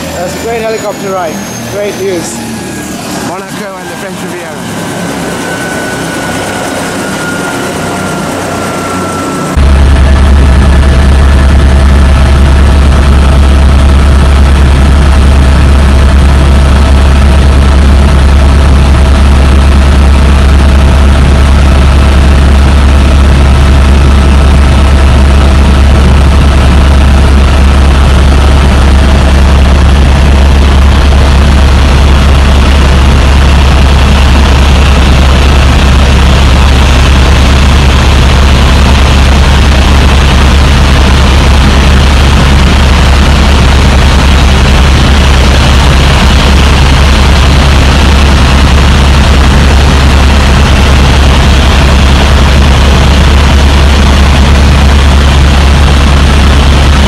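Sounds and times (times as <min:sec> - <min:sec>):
helicopter engine and rotor: 0:00.0 - 0:57.0.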